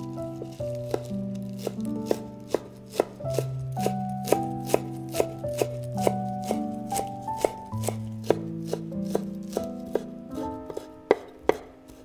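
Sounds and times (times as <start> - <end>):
background music: 0.0 - 12.0
knife chopping on wooden board: 0.3 - 12.0.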